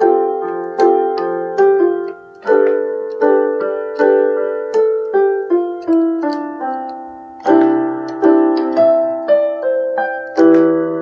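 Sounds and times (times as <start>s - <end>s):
electronic keyboard piano chords: 0.0s - 11.0s.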